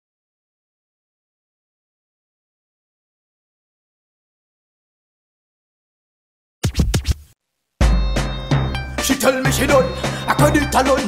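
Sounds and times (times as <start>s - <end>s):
record scratch: 6.6s - 7.4s.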